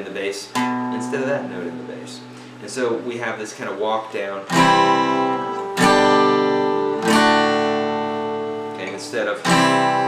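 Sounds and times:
acoustic guitar chords strummed: 0.4s - 3.3s, 4.4s - 10.0s.

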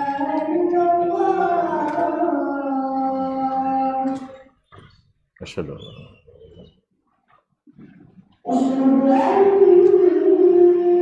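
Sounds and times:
man chanting call to prayer: 0.0s - 4.4s.

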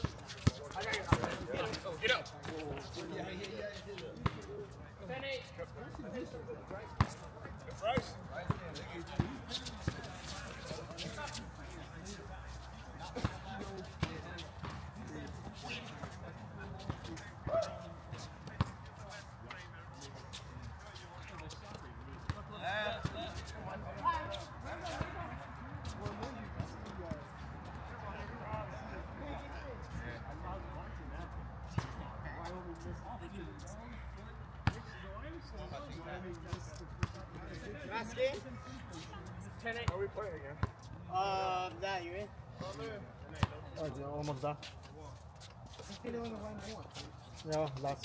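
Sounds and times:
distant players' voices: 0.0s - 48.0s.

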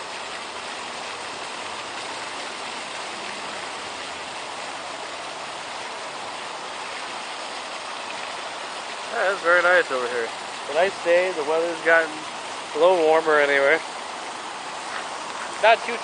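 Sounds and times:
fountain water splashing: 0.0s - 16.0s.

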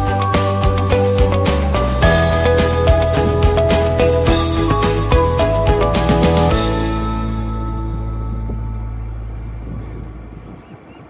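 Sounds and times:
background music: 0.0s - 9.7s
wind on microphone: 6.6s - 11.0s.

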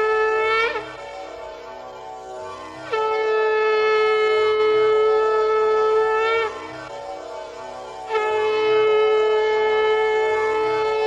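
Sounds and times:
conch shell blown: 0.0s - 11.0s.

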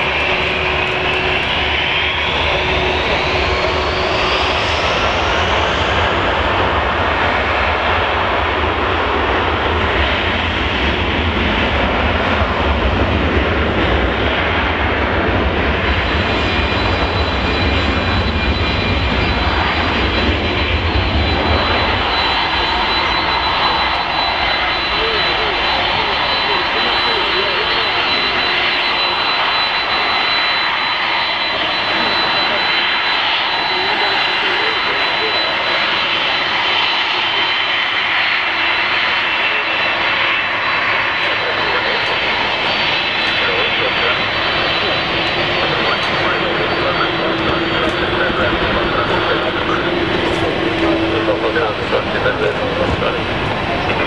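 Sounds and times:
jet engine rumble: 0.0s - 54.0s
jet engine whine: 0.0s - 54.0s.

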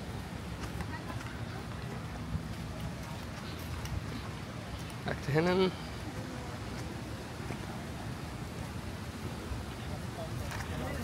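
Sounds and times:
indistinct voices of passers-by: 0.0s - 11.0s
outdoor background hiss: 0.0s - 11.0s.

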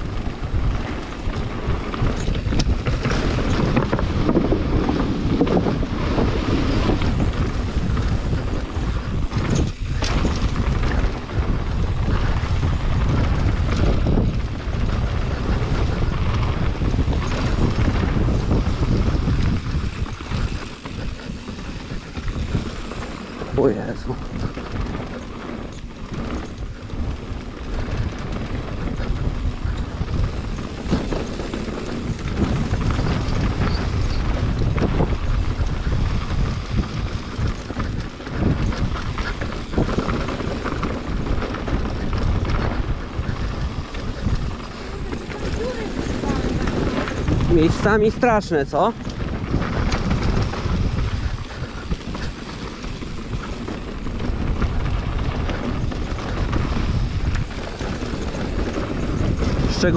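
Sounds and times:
bike rattling over bumps: 0.0s - 59.9s
tyres rolling on gravel: 0.0s - 59.9s
wind buffeting microphone: 0.0s - 59.9s.

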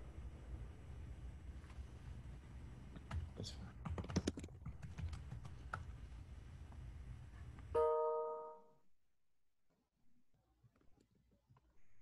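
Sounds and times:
low steady hum: 0.0s - 8.7s
computer keyboard typing: 3.0s - 5.9s.

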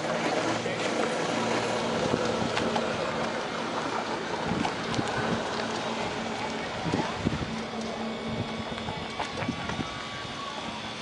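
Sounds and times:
toy car drive humming: 0.0s - 11.0s.

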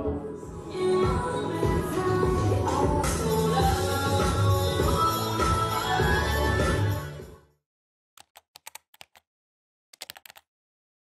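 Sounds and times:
music: 0.0s - 7.6s
typewriter key clicks: 10.0s - 10.4s.

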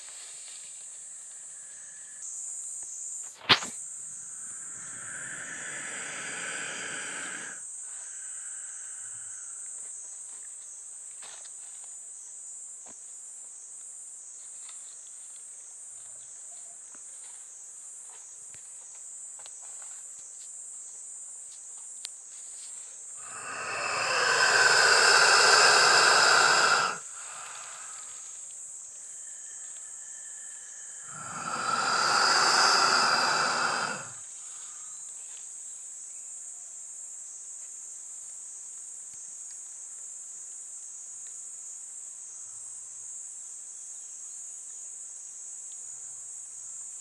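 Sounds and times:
high-pitched insect buzzing: 23.2s - 28.4s, 29.1s - 34.2s.

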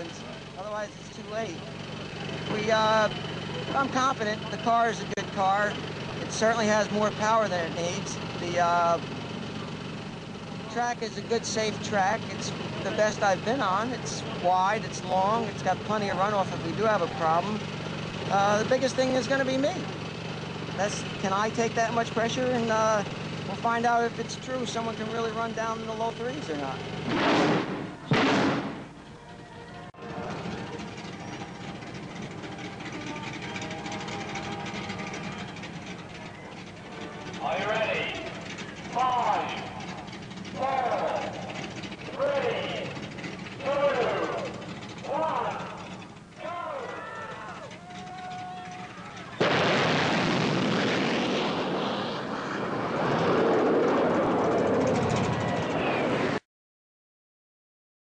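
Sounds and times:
rocket engine roaring: 48.4s - 56.4s.

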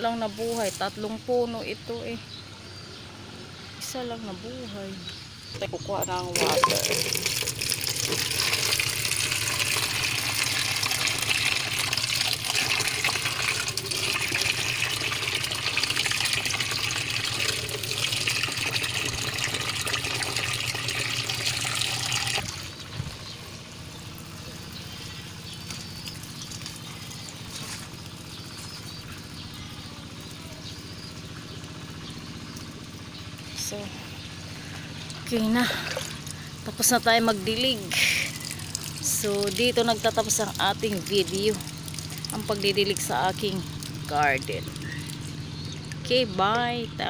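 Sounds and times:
tap water running into bucket: 6.0s - 23.3s, 24.0s - 31.8s, 34.7s - 46.2s.

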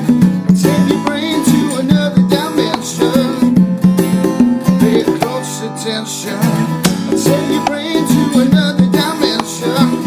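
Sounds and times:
electronic hand percussion: 0.0s - 5.5s, 6.8s - 10.0s
acoustic guitar rhythm: 0.0s - 10.0s.

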